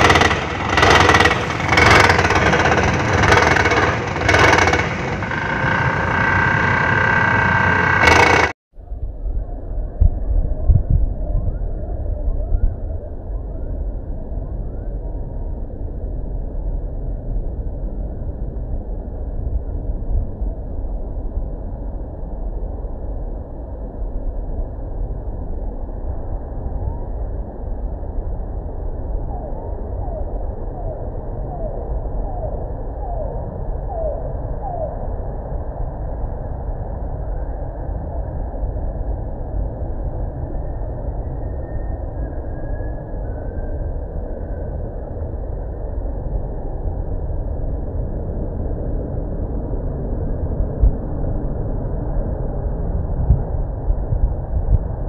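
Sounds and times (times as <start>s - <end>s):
vibratory pile hammer rumble: 0.0s - 8.6s.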